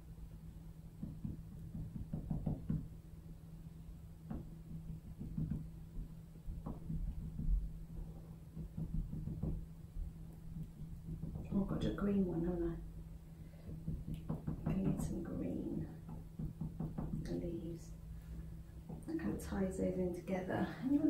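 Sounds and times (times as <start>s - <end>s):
steady low hum: 0.0s - 21.0s
cotton bud tapping on paper: 1.0s - 2.9s, 4.3s - 7.7s, 8.5s - 9.6s, 10.4s - 11.6s, 13.6s - 15.2s, 16.0s - 17.4s.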